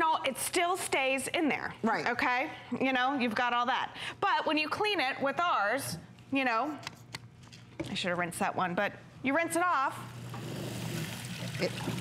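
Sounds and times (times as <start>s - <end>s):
tap water running into sink: 10.2s - 12.0s.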